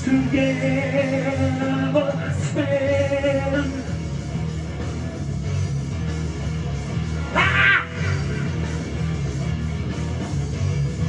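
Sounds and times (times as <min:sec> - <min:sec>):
rock music: 0:00.0 - 0:11.0.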